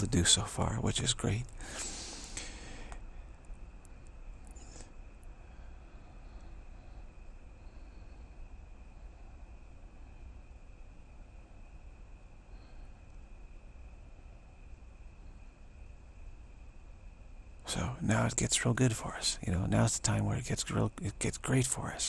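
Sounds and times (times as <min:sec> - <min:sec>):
faint high whine: 0:00.0 - 0:22.0
steady low hum: 0:00.0 - 0:22.0.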